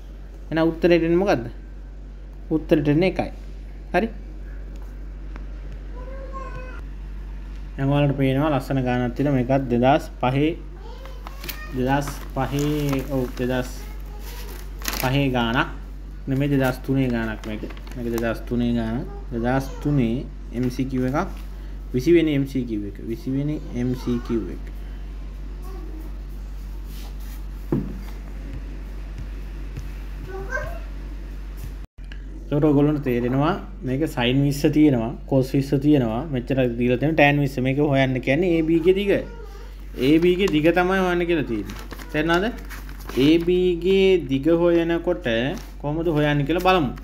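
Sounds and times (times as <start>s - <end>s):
steady low hum: 0.0s - 47.0s.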